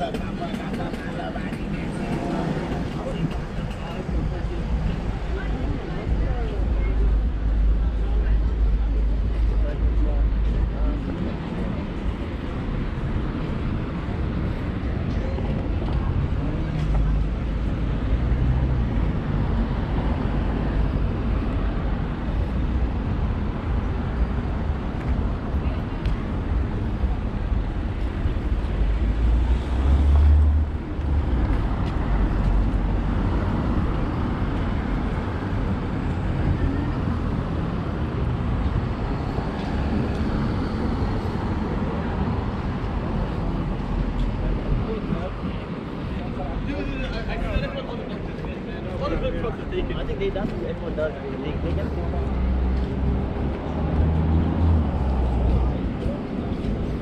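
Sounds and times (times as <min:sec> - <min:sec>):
cars passing with low rumble: 0:00.0 - 0:57.0.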